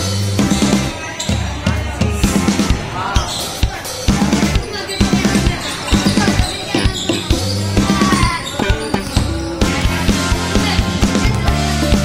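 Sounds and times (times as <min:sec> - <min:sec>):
music with heavy bass and drums: 0:03.7 - 0:06.4, 0:07.2 - 0:12.0.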